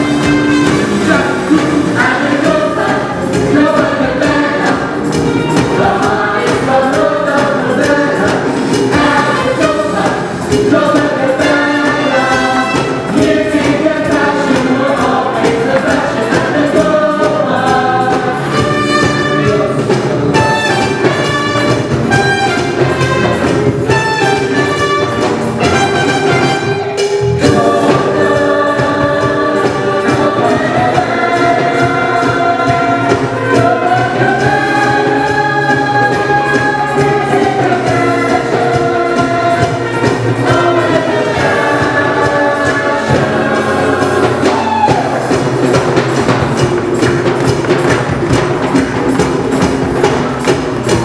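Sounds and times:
live band with guitar and brass: 0.0 - 51.0
sharp percussive hits: 0.0 - 51.0.

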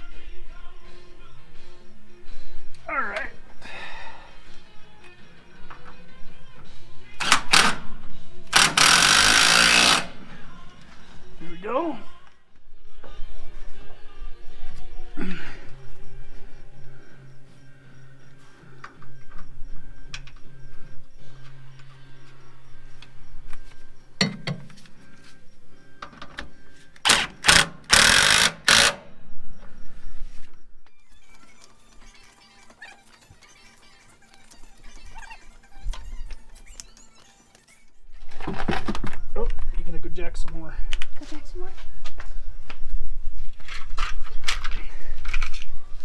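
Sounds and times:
background music with steady tones: 0.0 - 46.0
impact driver bursts: 8.5 - 10.3, 27.0 - 29.1.

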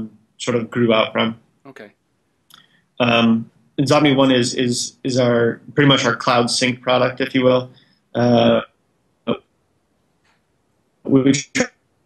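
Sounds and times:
man saying mm: 0.0 - 1.9, 3.0 - 7.6, 8.2 - 8.6, 11.1 - 11.7.

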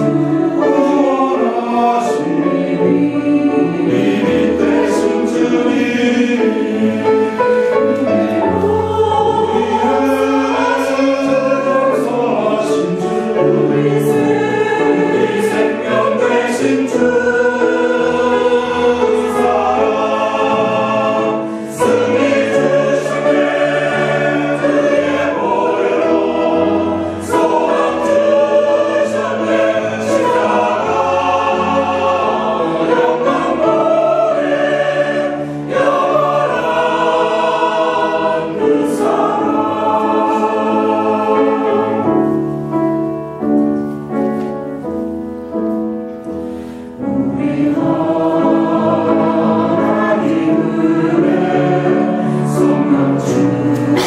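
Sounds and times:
choir singing a hymn: 0.0 - 54.0
piano accompaniment: 0.0 - 54.0.

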